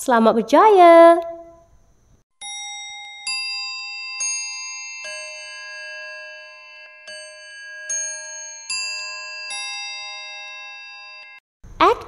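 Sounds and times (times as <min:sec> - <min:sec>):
slow ringing bell-like music: 0:02.4 - 0:11.4.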